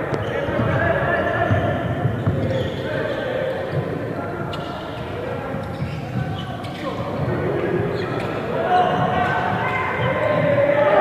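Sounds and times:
voices in gym: 0.0s - 11.0s
basketball bouncing on court: 1.4s - 2.8s.

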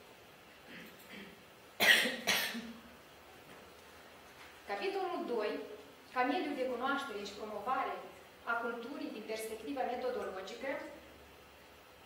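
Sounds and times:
person coughing: 0.7s - 2.8s.

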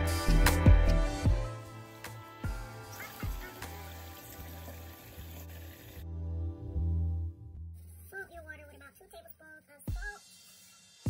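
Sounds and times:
background music: 0.0s - 11.0s
rice being rinsed by hand: 1.8s - 6.0s
tap water running into bowl: 2.9s - 6.0s.

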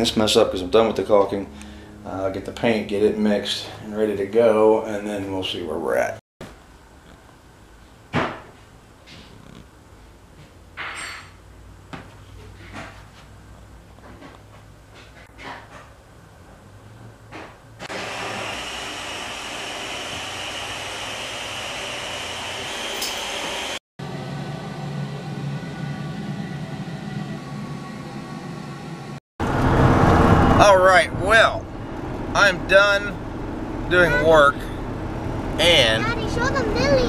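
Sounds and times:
voices: 33.9s - 34.7s, 35.6s - 37.0s.

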